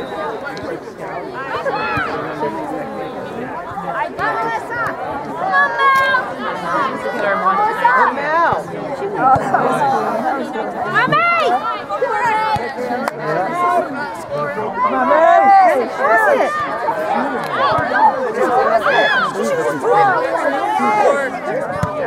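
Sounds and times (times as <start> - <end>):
overlapping chatter of spectators: 0.0 - 22.0.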